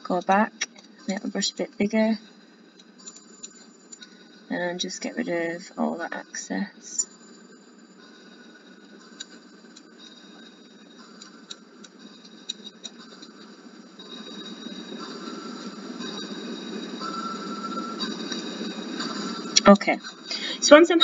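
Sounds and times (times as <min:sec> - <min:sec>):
low hum and hiss: 0:00.0 - 0:21.0
thin steady whine: 0:00.0 - 0:21.0.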